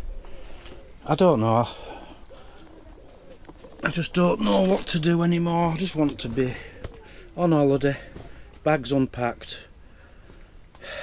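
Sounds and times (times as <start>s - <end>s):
pigeon cooing: 0.0s - 4.8s, 6.2s - 7.4s.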